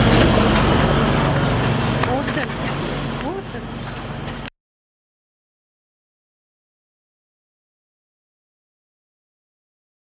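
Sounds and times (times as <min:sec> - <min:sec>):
machine humming: 0:00.0 - 0:04.5.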